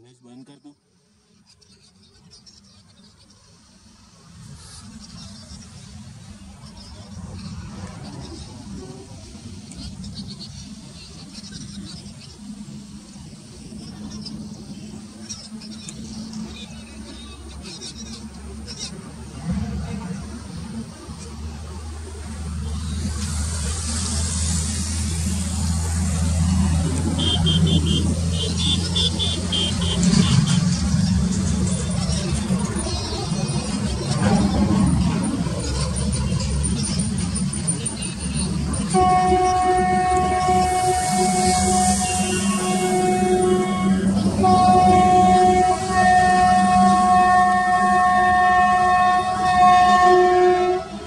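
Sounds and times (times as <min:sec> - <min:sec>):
train rumble and rail hiss: 0:00.0 - 0:51.0.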